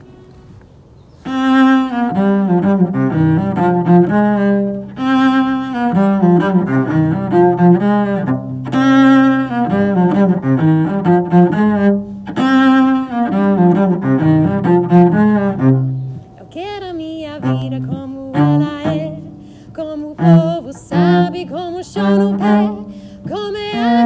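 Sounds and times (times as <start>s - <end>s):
cello playing rhythmic melody: 1.2s - 24.0s
person singing: 16.4s - 24.0s.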